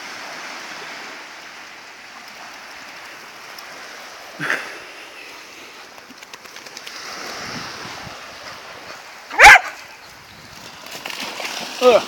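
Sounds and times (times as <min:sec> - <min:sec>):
small waves washing on shore: 0:00.0 - 0:12.0
loud dog bark: 0:09.3 - 0:09.8.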